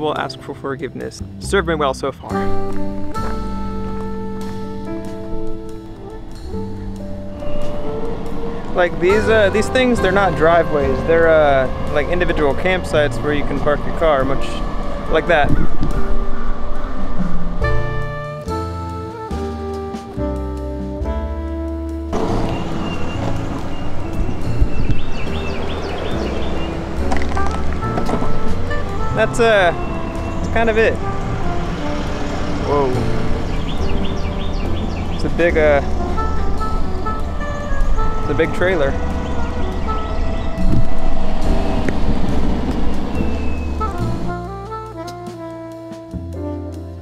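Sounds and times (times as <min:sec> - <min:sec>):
background music: 0:00.0 - 0:47.0
wind on microphone: 0:02.4 - 0:18.2, 0:22.1 - 0:44.5
longboard rolling on asphalt: 0:22.1 - 0:29.1, 0:39.0 - 0:44.4
electric skateboard rolling on asphalt: 0:39.1 - 0:43.3.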